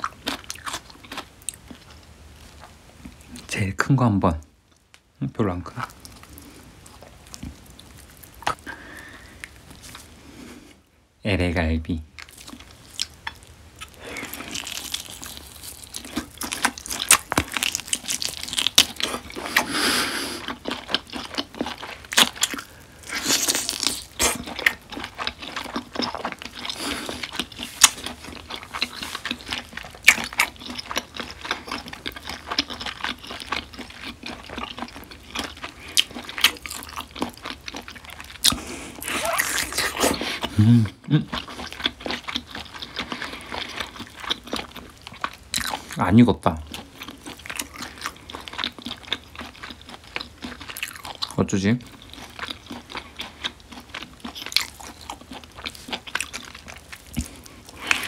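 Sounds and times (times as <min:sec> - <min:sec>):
biting and chewing meat: 0:00.0 - 0:03.4, 0:12.2 - 0:58.0.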